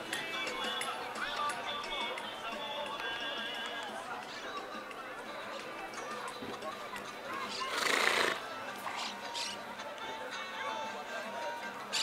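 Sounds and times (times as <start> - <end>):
horse snorting: 7.7 - 9.2.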